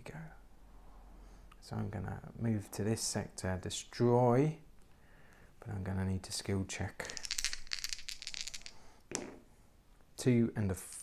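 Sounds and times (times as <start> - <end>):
dice clattering: 7.0 - 9.4.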